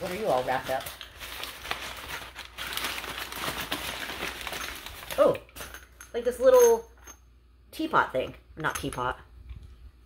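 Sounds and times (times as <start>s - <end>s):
packing paper crinkling: 0.0s - 5.4s.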